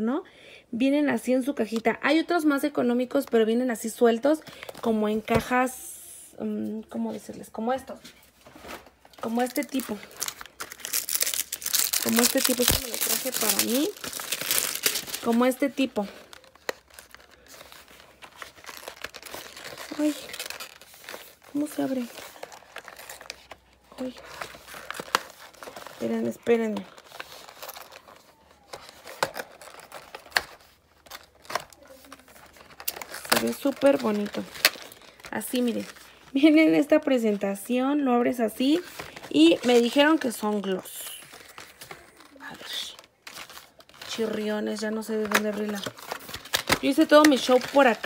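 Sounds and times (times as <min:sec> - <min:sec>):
packaging crinkling and crackling: 0:08.4 - 0:37.7, 0:38.6 - 0:48.0.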